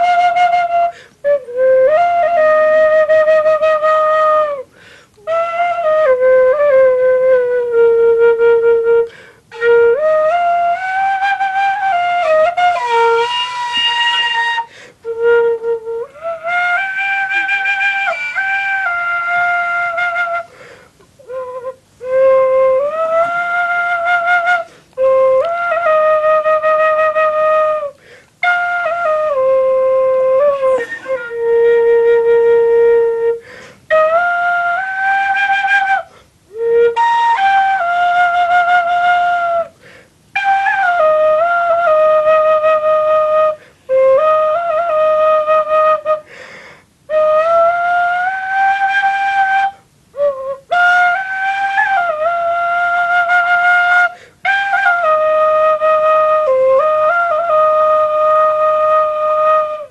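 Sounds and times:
flute-like wind instrument melody: 0.0 - 59.9.

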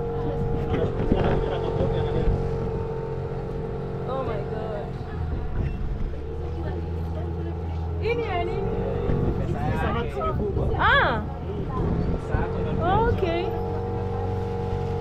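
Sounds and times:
outboard motor running: 0.0 - 15.0
people's voices: 3.9 - 15.0.

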